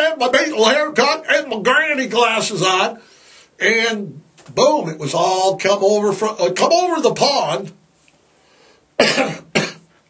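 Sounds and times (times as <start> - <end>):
man coughing: 9.0 - 9.9.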